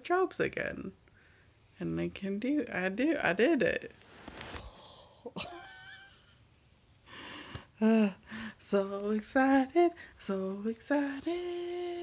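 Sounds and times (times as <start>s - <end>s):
person exhaling: 4.5s - 5.3s
person giggling: 5.2s - 6.4s.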